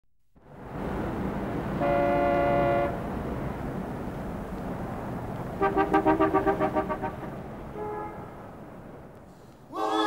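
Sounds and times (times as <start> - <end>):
city traffic noise: 0.4 - 10.0
car horn: 1.8 - 3.1, 5.6 - 8.6.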